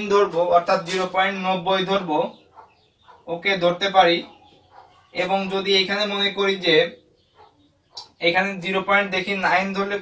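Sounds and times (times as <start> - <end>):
man speaking: 0.0 - 2.4, 5.1 - 7.0, 8.2 - 10.0.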